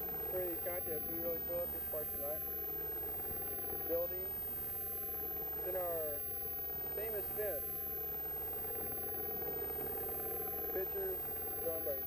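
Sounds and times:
steady mechanical hum: 0.0 - 12.0.

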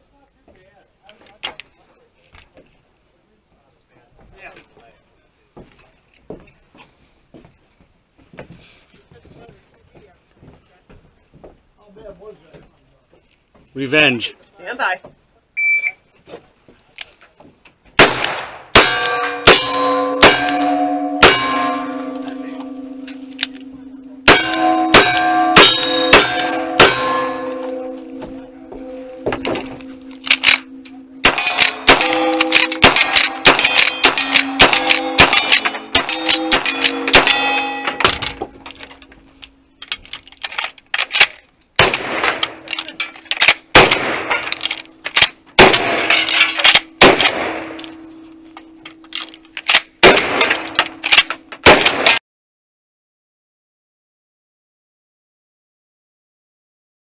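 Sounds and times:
gunshots: 18.0 - 22.0, 24.3 - 28.0, 29.2 - 38.5, 41.0 - 47.9, 50.0 - 52.2
steel plates ringing: 18.8 - 40.4, 42.0 - 51.6.

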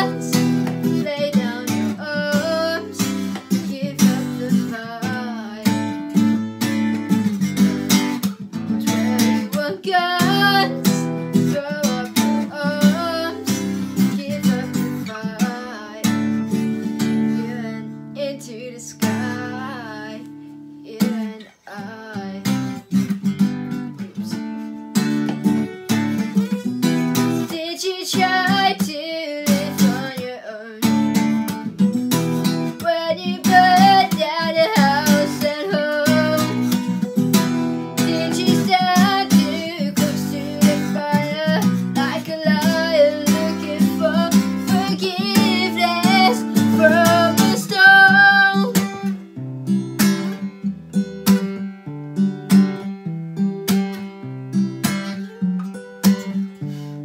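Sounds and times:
young woman singing: 0.0 - 22.8, 23.7 - 24.5, 26.6 - 49.1
acoustic guitar strumming: 0.0 - 57.0.

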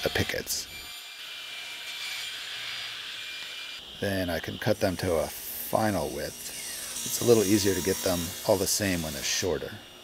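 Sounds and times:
power saw blade whirring: 4.5 - 9.7.

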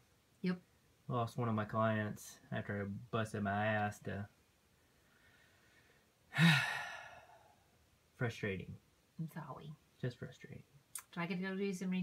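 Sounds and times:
person sighing heavily: 6.3 - 7.6.

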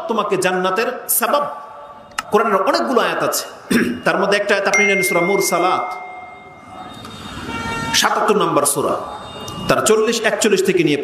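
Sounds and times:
ringing tones from loudspeakers: 1.4 - 11.0.

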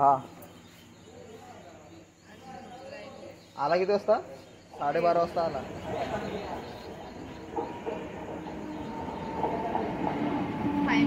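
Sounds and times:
electric train pulling in: 4.6 - 11.0.

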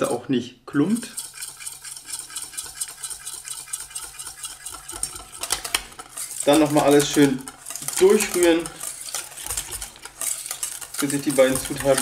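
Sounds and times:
wire whisk scraping metal bowl: 0.8 - 12.0.

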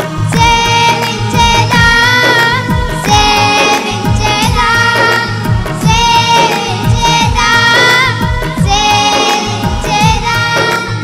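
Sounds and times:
musical accompaniment: 0.0 - 11.0
children singing worship song: 0.2 - 11.0
steady drum beat: 0.3 - 11.0.

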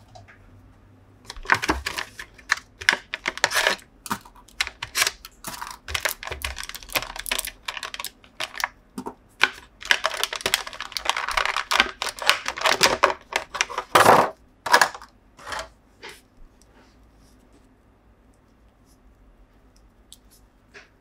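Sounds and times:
plastic blister tray crackling: 1.3 - 8.8, 9.4 - 15.7.

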